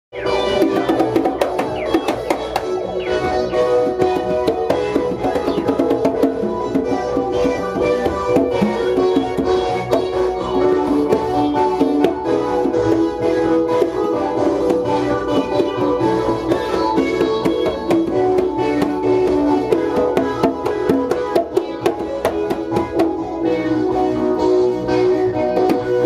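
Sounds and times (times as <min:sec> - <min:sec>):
synthesizers playing held notes: 0:00.1 - 0:26.0
congas struck by hand: 0:00.2 - 0:13.1.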